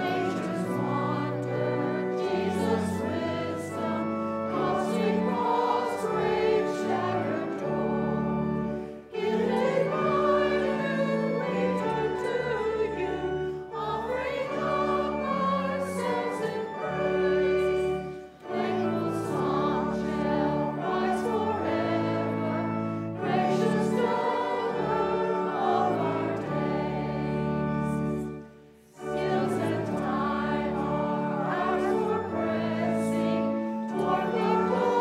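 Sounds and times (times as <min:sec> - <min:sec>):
congregation singing a hymn: 0:00.0 - 0:35.0
instrumental accompaniment: 0:00.0 - 0:35.0.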